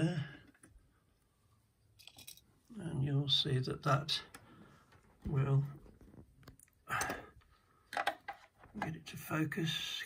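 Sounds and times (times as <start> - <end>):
man speaking: 0.0 - 0.4, 2.7 - 4.4, 5.2 - 5.8, 8.8 - 10.0.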